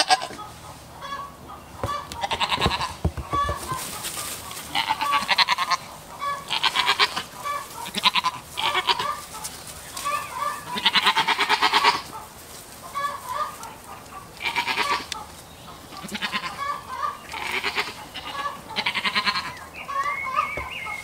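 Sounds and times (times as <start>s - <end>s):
goats bleating: 0.0s - 0.4s, 1.0s - 9.3s, 10.0s - 12.1s, 14.4s - 15.2s, 15.9s - 20.5s.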